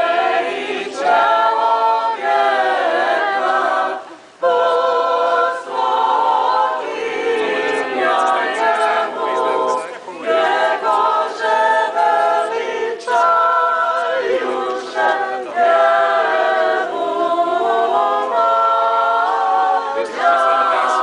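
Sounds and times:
choir singing a cappella hymn: 0.0 - 21.0
singers breathing: 4.0 - 4.4.

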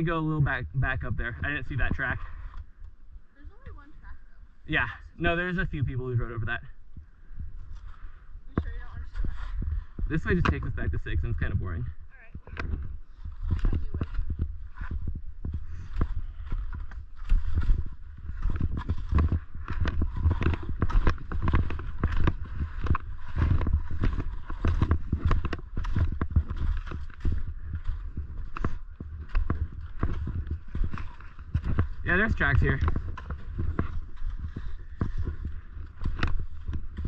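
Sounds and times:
wind rumbling on microphone: 0.0 - 37.0
skis scraping over snow: 8.6 - 11.8, 13.1 - 37.0.

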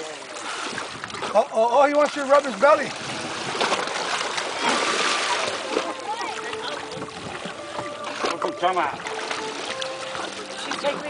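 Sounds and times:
water splashing from kicks: 0.0 - 11.0.

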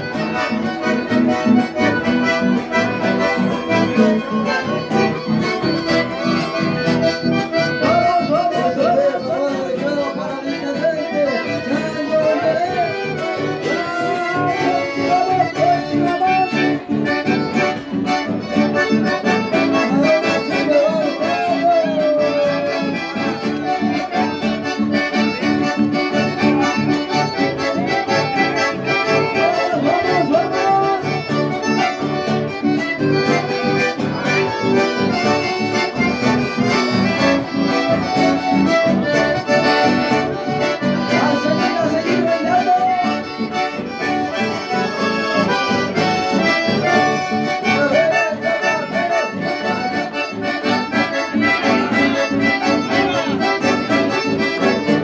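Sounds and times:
acoustic guitar: 0.0 - 55.0
piano accordion: 0.0 - 55.0.

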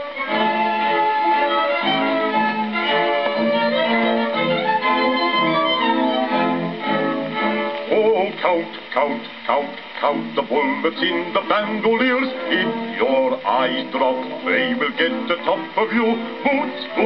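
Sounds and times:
orchestra with bowed strings: 0.0 - 17.0.

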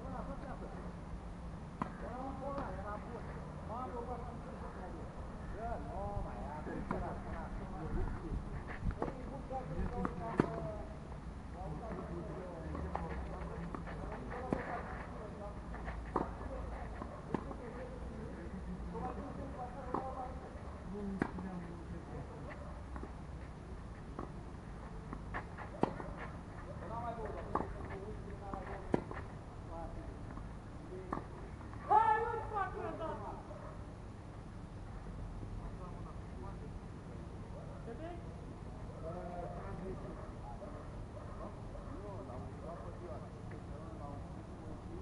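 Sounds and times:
tennis racket hitting ball: 25.3 - 26.3.

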